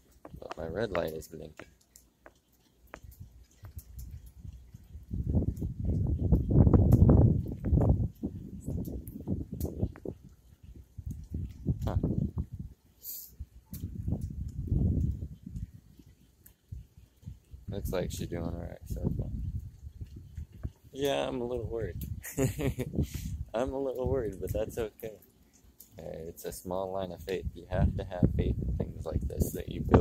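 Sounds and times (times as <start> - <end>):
small clicks and knocks: 0.0 - 5.7
gusty wind buffeting microphone: 3.0 - 24.9, 26.8 - 30.0.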